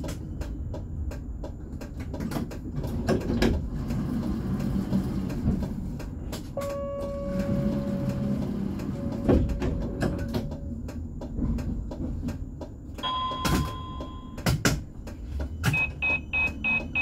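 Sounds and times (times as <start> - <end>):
tram rumbling: 0.0 - 17.0.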